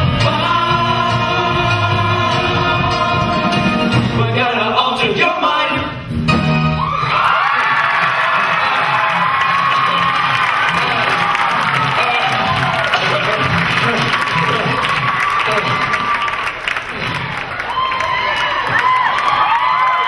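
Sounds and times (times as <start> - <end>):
audience cheering and applauding: 6.8 - 20.0.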